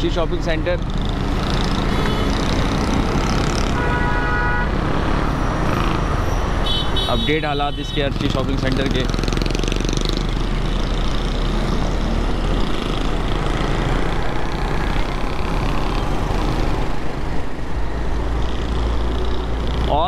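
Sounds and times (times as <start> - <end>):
low traffic rumble: 0.0 - 20.0
vehicle engines: 0.0 - 20.0.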